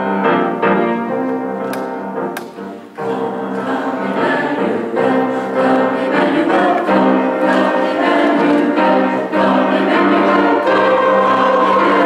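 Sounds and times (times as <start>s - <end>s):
church choir singing in harmony: 0.0s - 12.0s.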